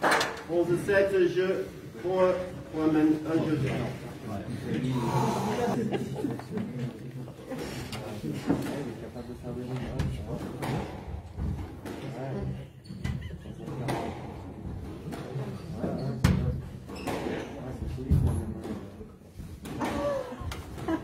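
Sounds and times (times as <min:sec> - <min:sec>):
squash ball hitting rackets and walls: 0:00.0 - 0:00.5, 0:10.0 - 0:20.9.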